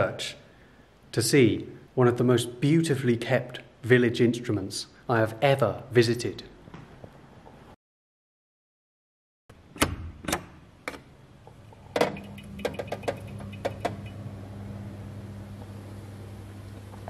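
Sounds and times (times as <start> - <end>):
wooden clicks and knocks: 12.0 - 14.2
organ blower motor hum: 12.1 - 17.0.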